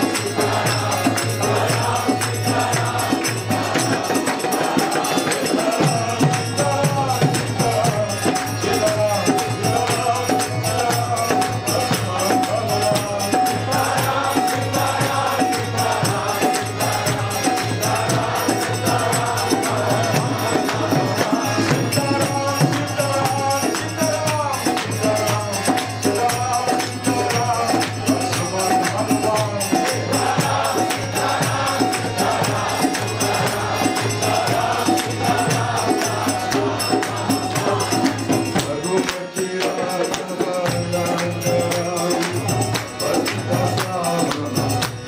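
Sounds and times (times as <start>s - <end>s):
group chanting in chorus: 0.0s - 45.0s
hand percussion beat: 0.0s - 45.0s.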